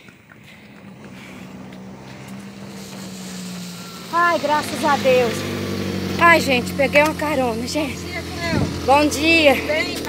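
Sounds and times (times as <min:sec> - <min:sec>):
car engine humming: 0:00.0 - 0:10.0.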